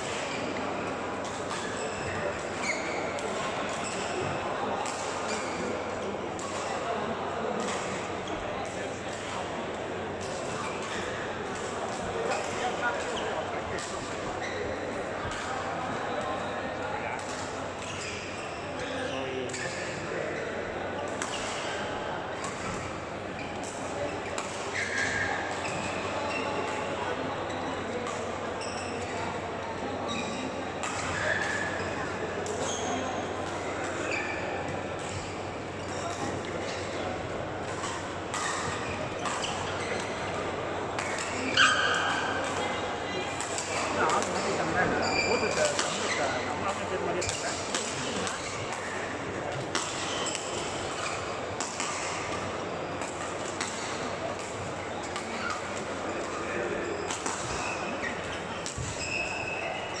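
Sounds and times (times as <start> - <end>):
echoing chatter of players: 0.0 - 60.0
shoe squeaks: 1.6 - 3.2, 14.4 - 15.5, 17.9 - 18.8, 23.4 - 26.7, 28.6 - 29.2, 30.0 - 32.0, 32.6 - 33.2, 33.8 - 37.0, 37.9 - 40.4, 41.0 - 42.7, 43.7 - 46.5, 49.9 - 51.3, 56.3 - 60.0
rackets hitting shuttlecocks: 46.9 - 55.9.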